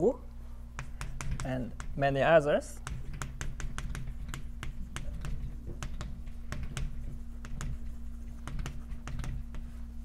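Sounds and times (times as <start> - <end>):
low room hum: 0.0 - 10.0
chalk writing on blackboard: 0.5 - 10.0.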